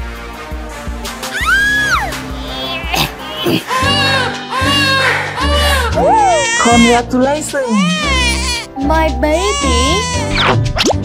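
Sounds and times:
background music: 0:00.0 - 0:11.0
baby crying: 0:01.2 - 0:10.4.

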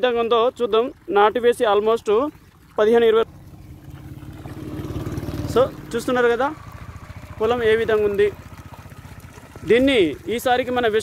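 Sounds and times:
engine running with low pulsing: 0:02.0 - 0:11.0.

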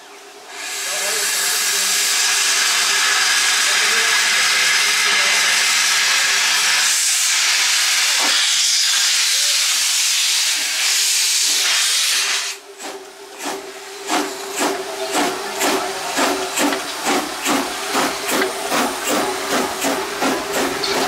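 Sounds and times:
steam locomotive venting steam: 0:00.0 - 0:21.0
steam locomotive exhaust chuffing: 0:00.5 - 0:21.0.

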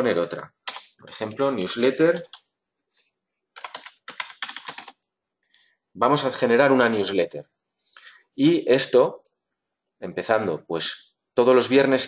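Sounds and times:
typing on computer keyboard: 0:00.6 - 0:01.0, 0:02.1 - 0:02.5, 0:03.6 - 0:05.1.

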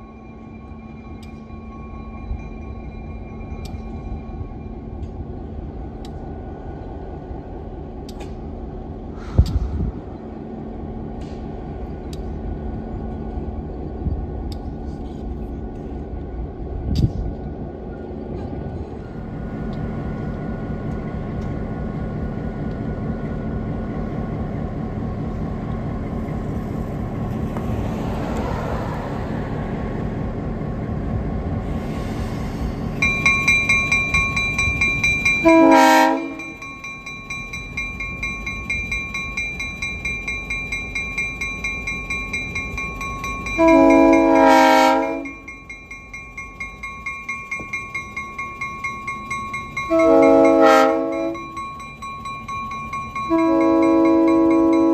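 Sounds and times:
locomotive bell ringing: 0:00.0 - 0:05.6, 0:32.8 - 0:54.9
diesel locomotive engine drone: 0:00.0 - 0:54.9
train horn blast: 0:35.4 - 0:36.6, 0:43.6 - 0:45.5, 0:49.9 - 0:51.4, 0:53.3 - 0:54.9.

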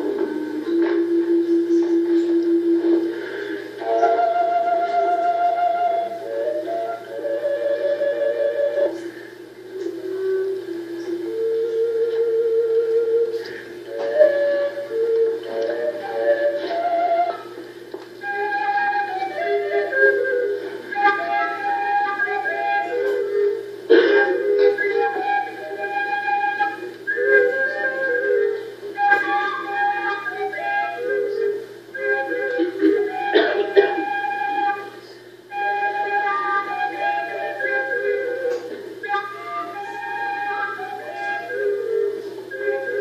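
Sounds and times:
overtone flute melody: 0:00.0 - 0:43.0.

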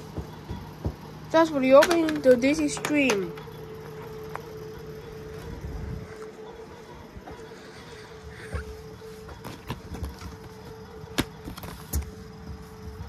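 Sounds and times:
disc tray motor rumble: 0:00.0 - 0:13.0
steady hum: 0:00.0 - 0:13.0.

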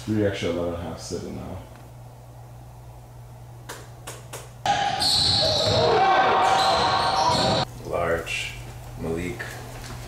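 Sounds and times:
echoing voices in gym: 0:04.7 - 0:07.7.

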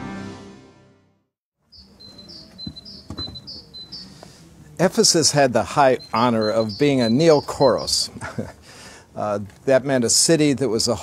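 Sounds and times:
bird chirping: 0:01.6 - 0:08.5.

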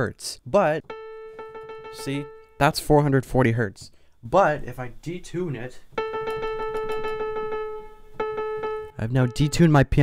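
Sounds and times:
electronic keyboard piano note: 0:00.8 - 0:03.3, 0:05.9 - 0:10.0
regular clicks: 0:06.0 - 0:09.0.

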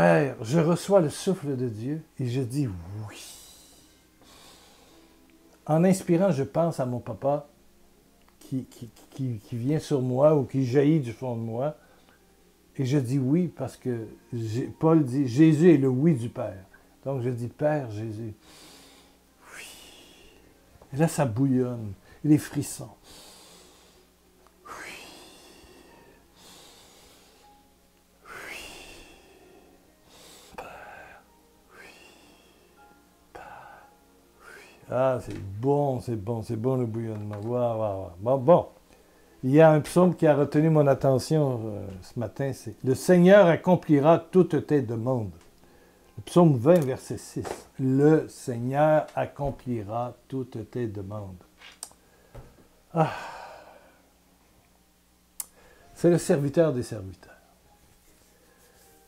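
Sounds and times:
man breathing deeply: 0:03.2 - 0:05.2, 0:18.4 - 0:20.6, 0:23.0 - 0:34.8, 0:45.6 - 0:46.2, 0:52.0 - 0:54.1, 0:55.5 - 0:55.9
man sighing: 0:52.9 - 0:54.0.

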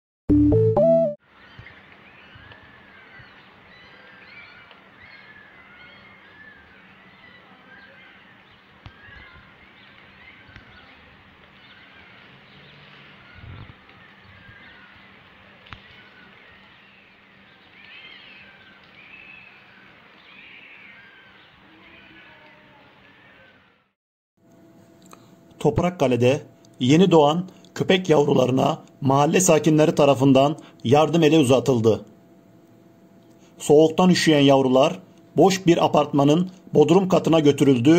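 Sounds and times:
steady low hum: 0:24.4 - 0:37.9.

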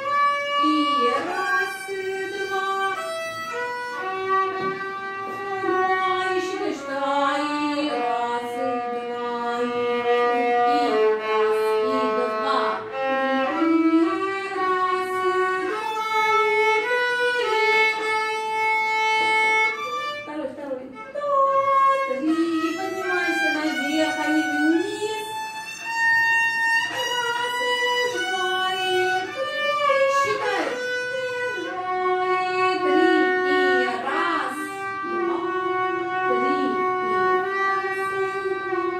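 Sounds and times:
violin playing slow melody: 0:00.0 - 0:38.9.

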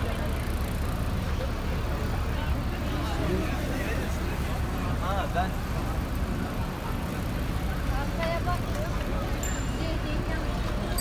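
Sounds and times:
faint voices of people: 0:00.0 - 0:11.0
low rumble of traffic: 0:00.0 - 0:11.0
wind: 0:00.0 - 0:11.0.

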